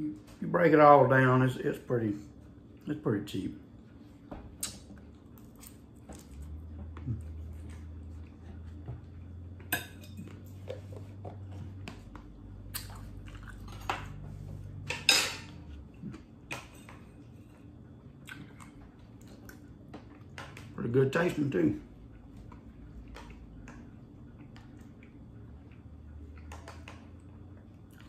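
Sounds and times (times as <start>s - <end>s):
chewing: 4.6s - 14.2s, 15.7s - 20.7s, 22.0s - 28.0s.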